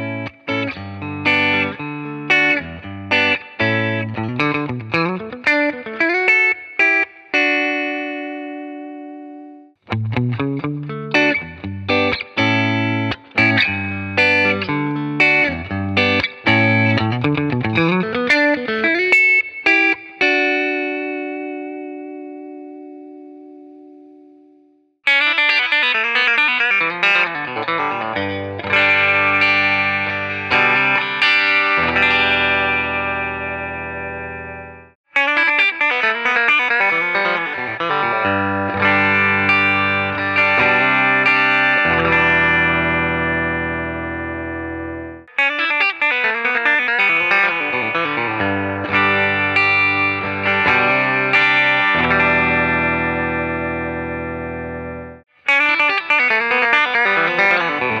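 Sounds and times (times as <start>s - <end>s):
clean electric guitar: 0.0s - 58.0s.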